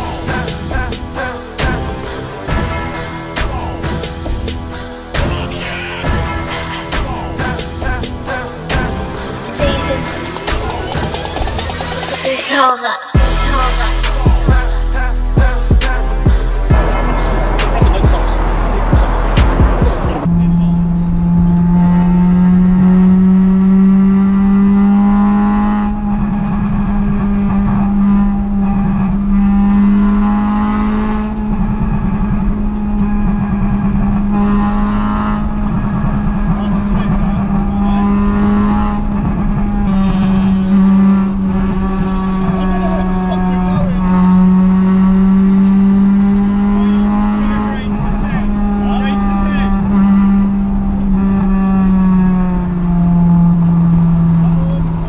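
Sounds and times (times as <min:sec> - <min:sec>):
car engine droning: 0:00.0 - 0:55.0
road noise: 0:00.0 - 0:55.0.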